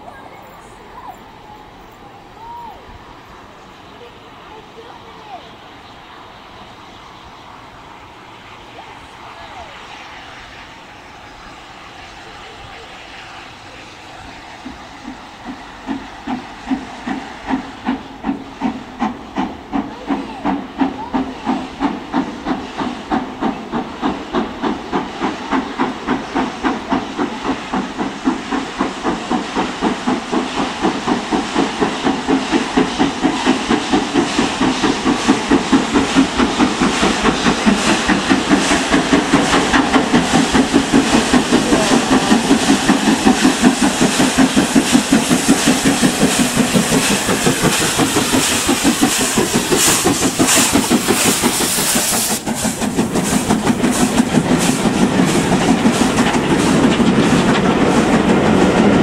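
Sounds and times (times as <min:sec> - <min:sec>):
hiss of steam: 0:00.0 - 0:59.0
steam locomotive exhaust chuffs: 0:00.0 - 0:59.0.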